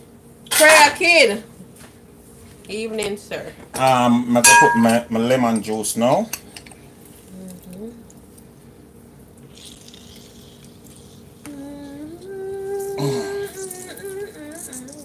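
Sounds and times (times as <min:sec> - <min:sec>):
person humming a tune: 0:07.3 - 0:08.0, 0:11.4 - 0:15.0.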